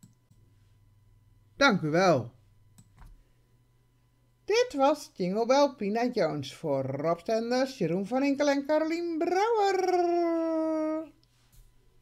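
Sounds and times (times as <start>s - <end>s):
voice holding a long note: 9.2s - 11.2s.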